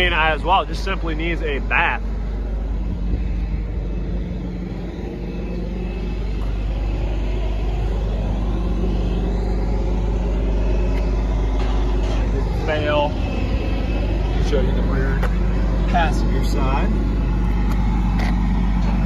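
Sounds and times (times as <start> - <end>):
vehicle engine idling: 0.0 - 19.0.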